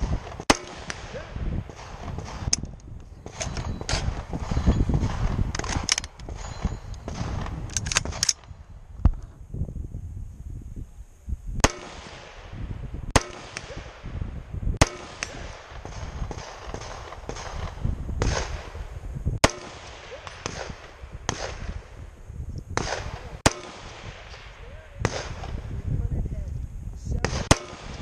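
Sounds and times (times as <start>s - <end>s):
gunshots with echo: 11.6s - 12.6s, 13.2s - 14.2s, 14.8s - 18.8s, 19.4s - 21.8s.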